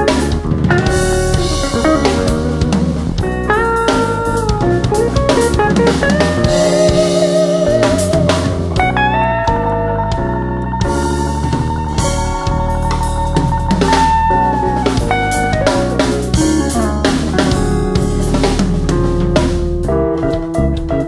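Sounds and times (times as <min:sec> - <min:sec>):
drum kit: 0:00.0 - 0:21.0
lead guitar melody: 0:00.0 - 0:21.0.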